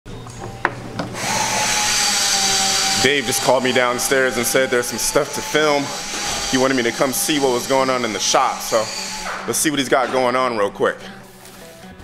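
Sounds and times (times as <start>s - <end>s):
machine whining and hissing: 1.1s - 9.6s.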